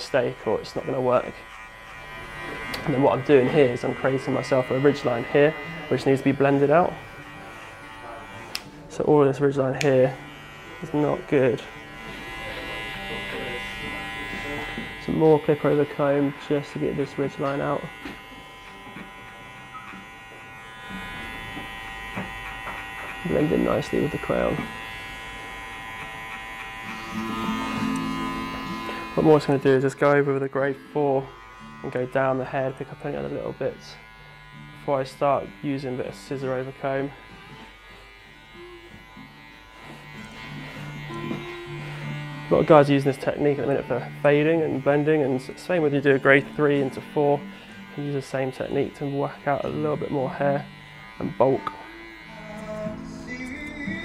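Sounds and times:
electric hair clippers buzzing: 0.0s - 54.0s
background music: 50.7s - 54.0s.

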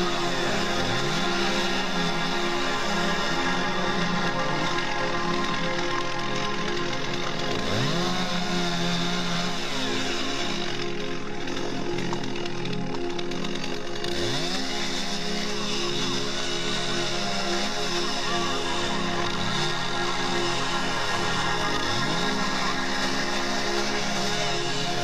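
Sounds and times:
background music: 0.0s - 25.0s
chainsaw revving: 0.0s - 25.0s.

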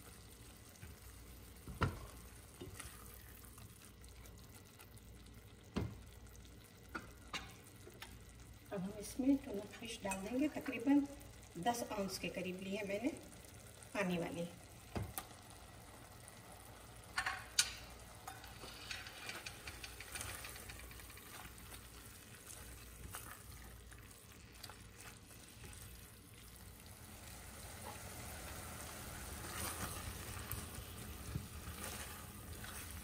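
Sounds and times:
food sizzling in a pot: 0.0s - 33.0s
spatula stirring and scraping: 18.1s - 33.0s.

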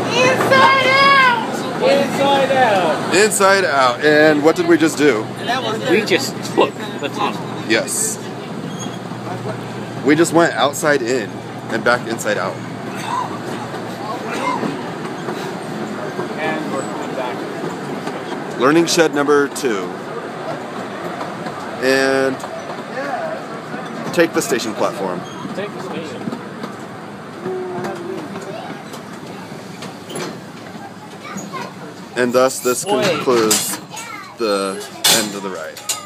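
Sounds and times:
train wheels rumbling on rails: 0.0s - 34.2s
indistinct voices: 0.0s - 36.0s.

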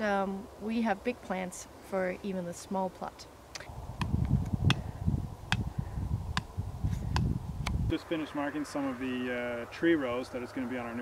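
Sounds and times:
wind buffeting microphone: 3.6s - 11.0s.

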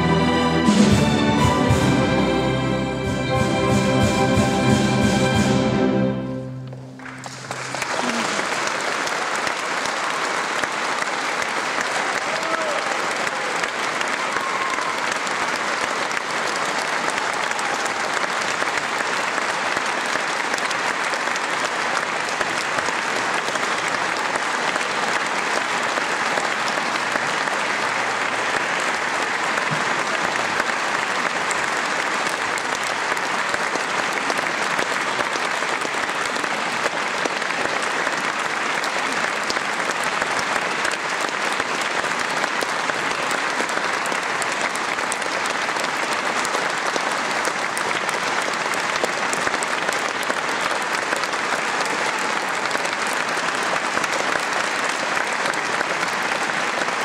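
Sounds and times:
audience applauding: 6.5s - 57.0s.

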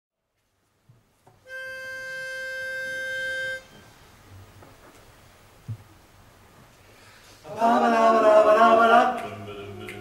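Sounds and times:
pitch pipe held note: 1.5s - 3.8s.

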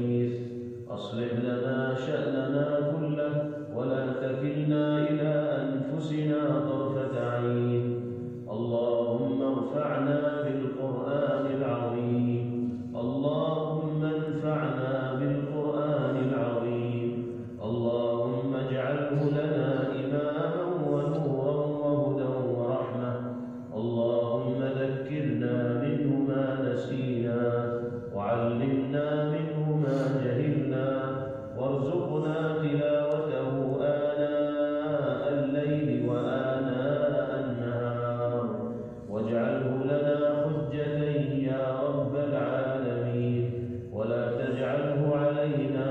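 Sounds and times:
man chanting: 0.0s - 45.9s.

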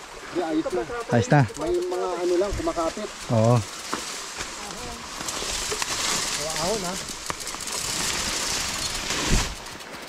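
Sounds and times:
grass rustling against bike: 0.0s - 10.0s.

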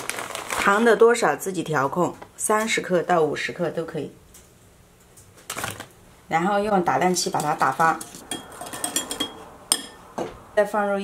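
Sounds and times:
whisk clinking against glass bowl: 7.3s - 10.0s.

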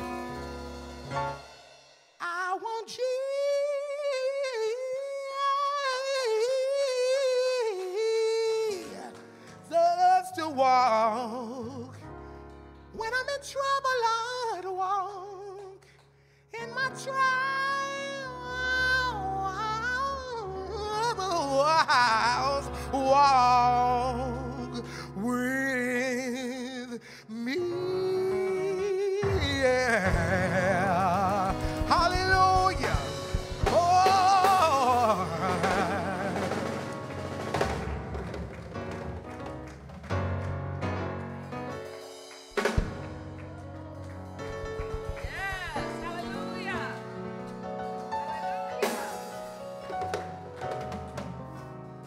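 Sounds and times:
man singing with vibrato: 2.2s - 12.1s, 12.9s - 15.8s, 16.5s - 37.0s.

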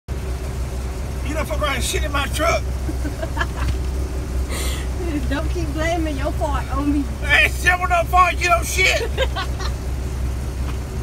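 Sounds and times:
truck diesel engine idling: 0.1s - 11.0s.

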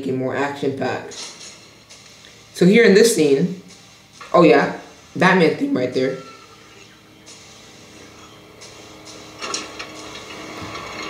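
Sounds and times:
quiet film soundtrack: 0.0s - 11.0s.

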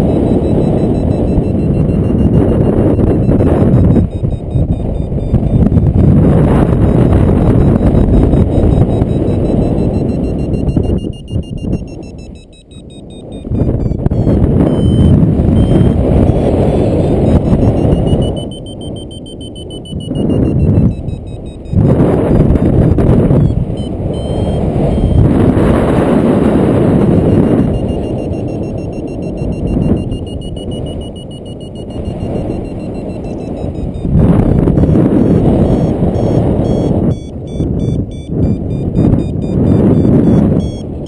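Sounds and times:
faint electronic beeping: 0.0s - 41.0s
wind rushing over microphone: 0.0s - 41.0s.

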